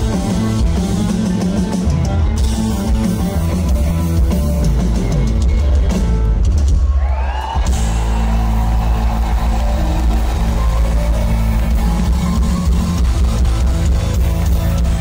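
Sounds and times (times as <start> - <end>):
bass guitar: 0.0 - 15.0
drum kit: 0.0 - 15.0
keyboards: 0.0 - 15.0
audience clapping along: 7.1 - 15.0.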